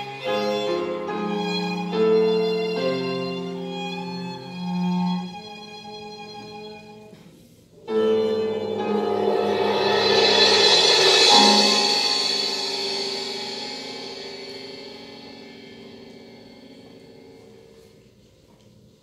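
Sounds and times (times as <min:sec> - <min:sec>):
cymbal swell: 0:00.0 - 0:06.0, 0:07.8 - 0:18.4
piano and strings sustained chord: 0:00.0 - 0:06.9, 0:07.8 - 0:18.4.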